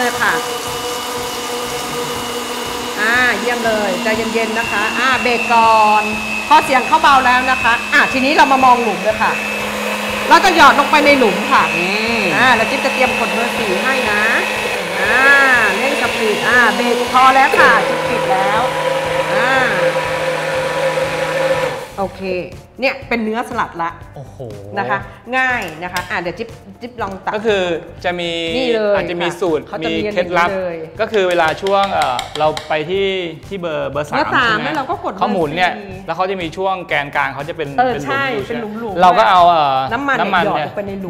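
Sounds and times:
blender motor running: 0.0 - 22.4.

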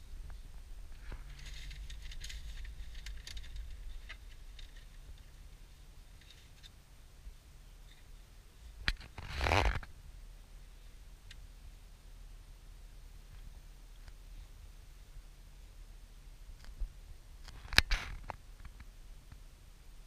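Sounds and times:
faint ticks and crackles: 0.0 - 20.0
loud rustle: 0.9 - 5.4.

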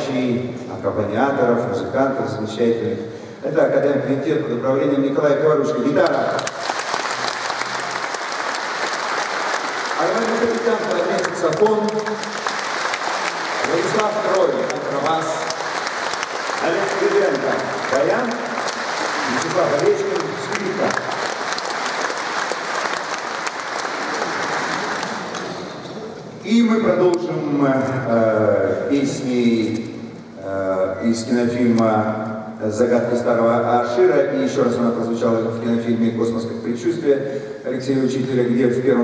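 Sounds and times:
audience applauding: 6.0 - 26.3.

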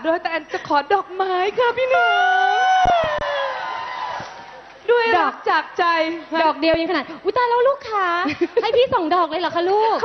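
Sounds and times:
crowd cheering: 2.0 - 4.8.

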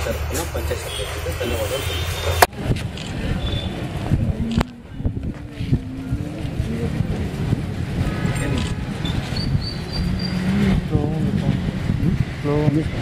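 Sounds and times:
steady low rumble: 2.5 - 13.0.

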